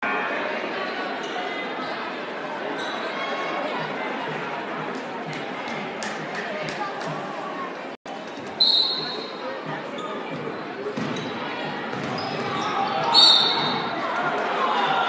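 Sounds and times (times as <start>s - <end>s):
crowd chatter: 0.0s - 15.0s
referee whistle blasts: 8.6s - 9.3s, 13.1s - 13.8s
basketball bouncing on hardwood: 11.9s - 12.5s.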